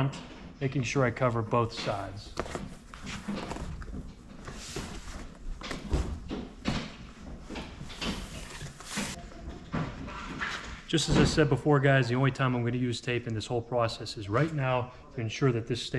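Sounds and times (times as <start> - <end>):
cardboard scraping and rustling: 7.9 - 9.2.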